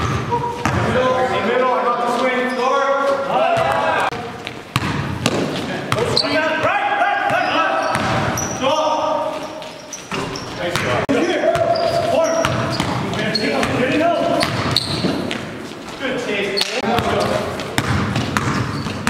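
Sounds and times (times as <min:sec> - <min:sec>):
players' voices calling out: 0:00.1 - 0:04.4, 0:05.8 - 0:15.2
basketball bouncing on hardwood: 0:04.4 - 0:06.1, 0:14.4 - 0:15.4, 0:16.9 - 0:19.0
sneaker squeaks on floor: 0:04.4 - 0:06.6, 0:07.3 - 0:19.0.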